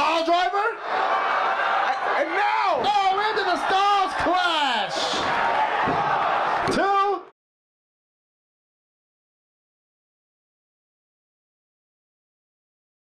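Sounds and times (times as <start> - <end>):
commentators and crowd shouting: 0.0 - 7.3.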